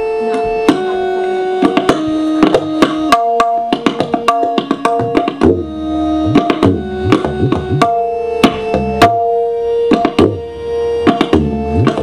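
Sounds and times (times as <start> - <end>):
melodic accompaniment held notes: 0.0 - 12.0
tabla strokes: 0.0 - 12.0.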